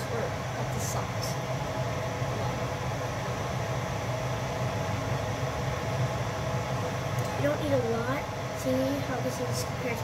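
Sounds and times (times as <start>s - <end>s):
low steady hum: 0.0s - 10.0s
pasta water boiling: 0.0s - 10.0s.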